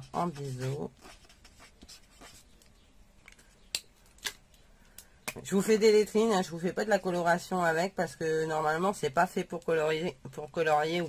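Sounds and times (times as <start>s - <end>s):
marker scratching on paper: 0.0s - 2.6s.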